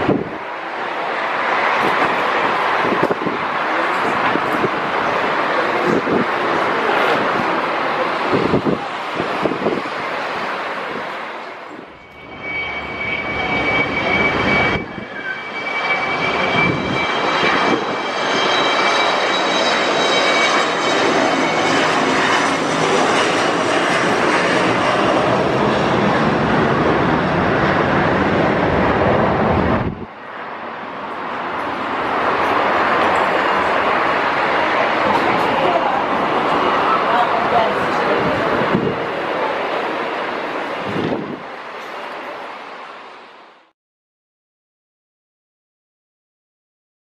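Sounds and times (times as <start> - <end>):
high turbofan whine: 0.0 - 43.7
jet engines roaring at takeoff: 0.0 - 43.7.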